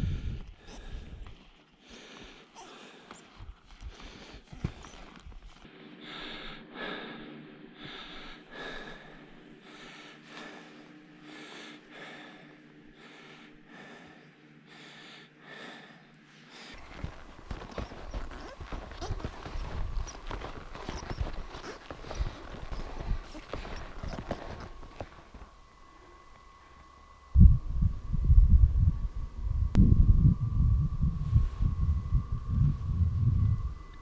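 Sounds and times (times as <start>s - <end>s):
wind buffeting microphone: 0.0s - 1.3s, 27.3s - 34.0s
footsteps crunching in snow: 2.7s - 5.7s, 16.8s - 25.5s.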